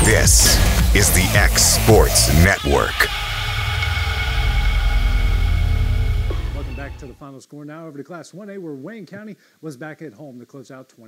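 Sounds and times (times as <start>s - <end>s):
held chord of steady tones: 1.9s - 7.2s
deep low rumble: 3.1s - 7.2s.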